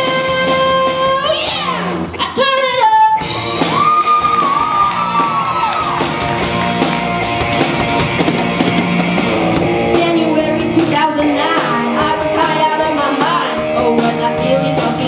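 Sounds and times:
bass guitar: 0.0 - 15.0
electric guitar: 0.0 - 15.0
drum kit hits: 3.2 - 10.2
person singing: 9.9 - 15.0.

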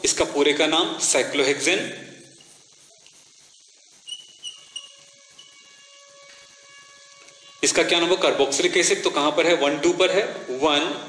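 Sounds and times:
thin high tones: 2.2 - 11.0
chalk scratching on chalkboard: 2.3 - 5.6.

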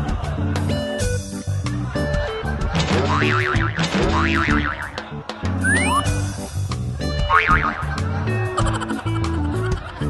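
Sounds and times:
background music: 0.0 - 10.0
cartoon boing sound effect: 3.0 - 5.0, 5.6 - 6.1, 7.3 - 8.0.

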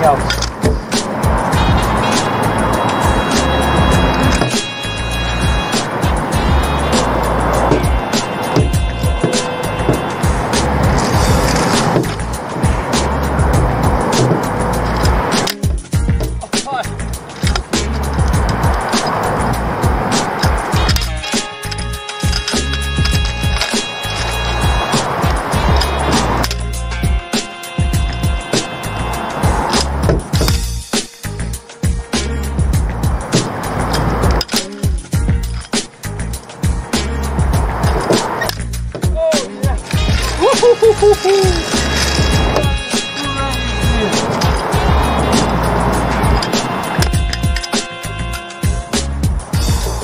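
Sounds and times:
skate wheels rolling on concrete: 0.0 - 16.3, 17.0 - 26.8, 32.6 - 48.2
background music: 0.0 - 50.0.

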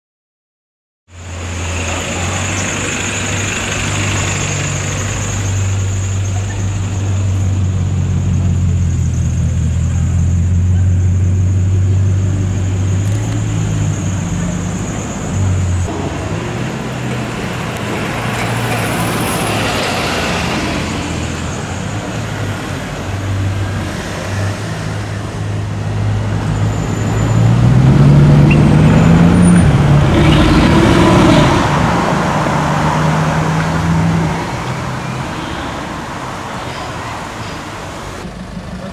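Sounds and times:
car engine running and accelerating: 1.1 - 35.2, 37.4 - 38.9.

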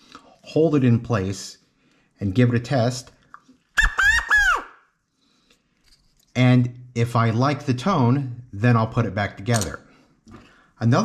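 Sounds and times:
quail call high notes: 3.8 - 4.7.

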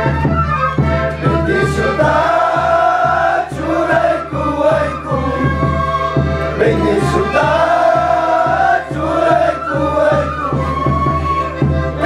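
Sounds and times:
men and women singing in unison: 1.2 - 11.0.

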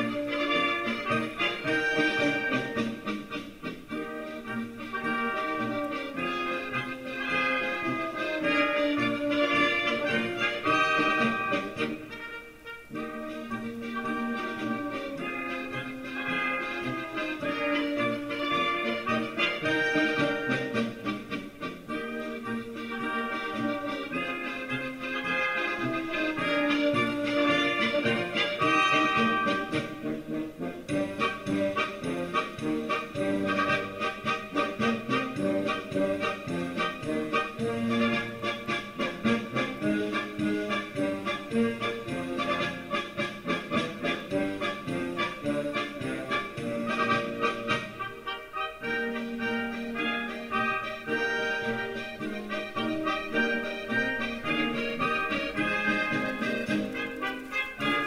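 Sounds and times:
accordion: 0.0 - 58.0
brass band playing: 0.0 - 58.0
drums: 0.0 - 58.0.

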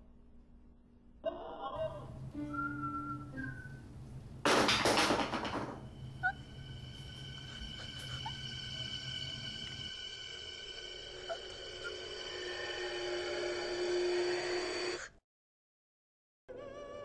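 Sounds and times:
high sustained tones: 5.8 - 14.5
low drone: 5.8 - 15.0.

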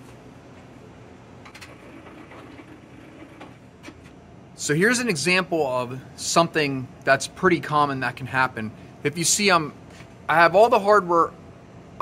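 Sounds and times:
low workshop background noise: 0.0 - 12.0.

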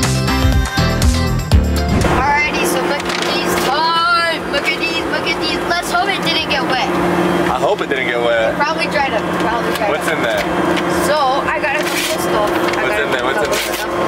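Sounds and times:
jet cabin drone: 1.8 - 9.7.

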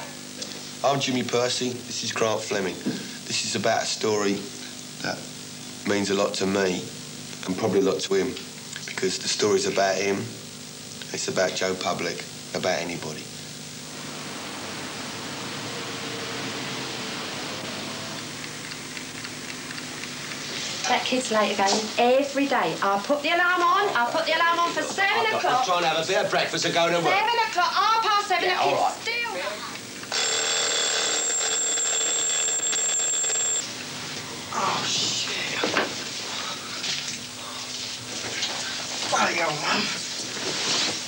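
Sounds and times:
steady background hiss: 0.0 - 30.1
alarm clock ringing: 30.1 - 33.6.

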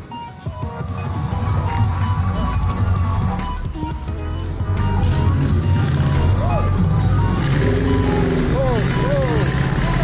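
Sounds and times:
music: 0.0 - 10.0
car engine running: 1.1 - 10.0.

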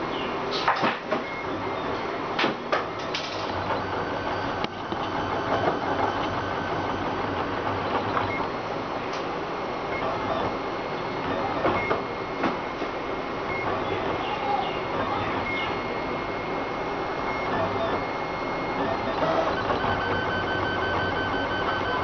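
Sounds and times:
printer motors whirring: 0.0 - 22.0.

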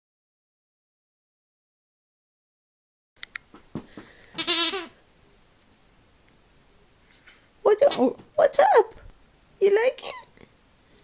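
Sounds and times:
dog toy squeaker: 4.4 - 4.9.

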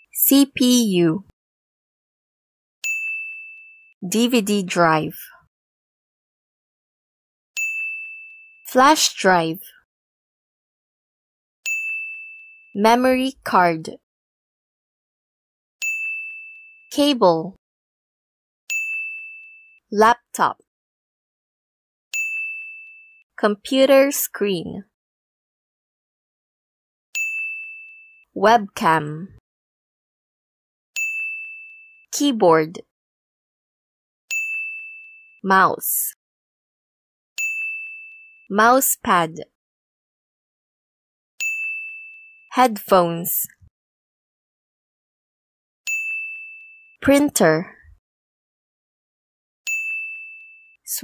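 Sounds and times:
bell-like ding chime: 2.8 - 4.0, 7.6 - 8.6, 11.7 - 12.8, 15.8 - 16.9, 18.7 - 19.8, 22.2 - 23.2, 27.2 - 28.2, 31.0 - 32.1, 34.3 - 35.4, 37.4 - 38.5, 41.4 - 42.6, 45.9 - 47.0, 49.7 - 50.8
bright high-pitched ding: 45.9 - 46.9, 49.7 - 50.6.

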